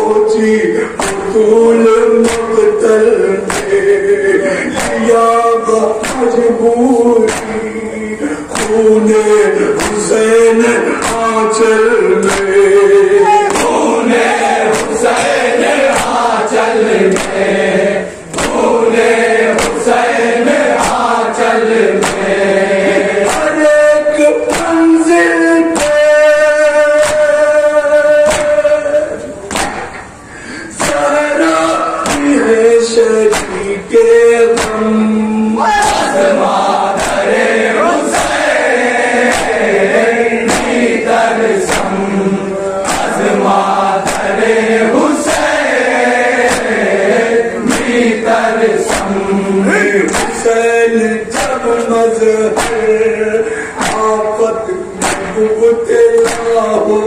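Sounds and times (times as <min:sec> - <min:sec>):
men chanting in unison: 0:00.0 - 0:29.9, 0:30.6 - 0:57.0
lead voice singing: 0:00.0 - 0:57.0
hands slapping chests: 0:01.0 - 0:01.3, 0:03.5 - 0:03.8, 0:06.0 - 0:06.3, 0:07.2 - 0:07.6, 0:08.5 - 0:08.8, 0:11.0 - 0:11.3, 0:12.2 - 0:12.6, 0:13.3 - 0:13.9, 0:14.7 - 0:16.2, 0:17.1 - 0:17.4, 0:18.3 - 0:18.7, 0:19.5 - 0:19.9, 0:22.0 - 0:22.3, 0:23.2 - 0:23.5, 0:29.5 - 0:30.1, 0:32.0 - 0:32.4, 0:33.3 - 0:33.6, 0:39.2 - 0:39.6, 0:40.4 - 0:40.9, 0:41.6 - 0:42.0, 0:42.8 - 0:43.3, 0:44.0 - 0:44.5, 0:46.3 - 0:46.8, 0:47.6 - 0:48.0, 0:48.8 - 0:49.2, 0:50.1 - 0:50.5, 0:52.5 - 0:52.9, 0:53.8 - 0:54.1, 0:55.0 - 0:55.3, 0:56.2 - 0:56.5.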